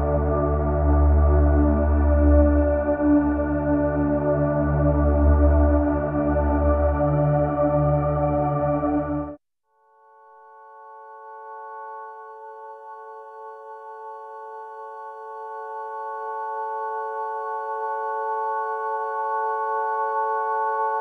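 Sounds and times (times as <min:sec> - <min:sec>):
ambient drone chord: 0:00.0 - 0:09.4.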